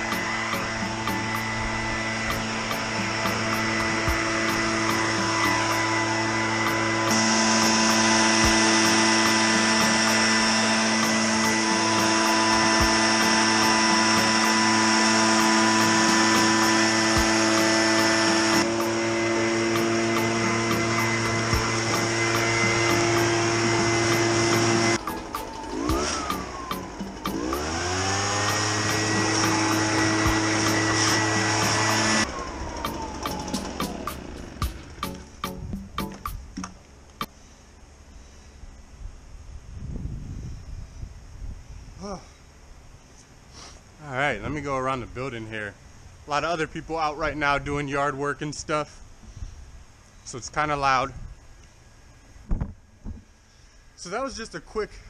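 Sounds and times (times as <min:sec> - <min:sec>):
leaf blower engine running: 0:00.0 - 0:38.6.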